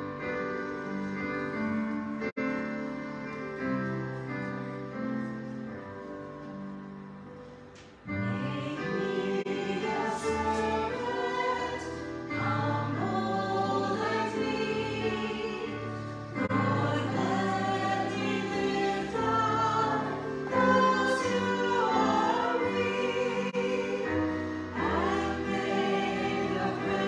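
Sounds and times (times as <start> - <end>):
keyboard accompaniment: 0.0 - 27.0
women singing in parts: 8.2 - 27.0.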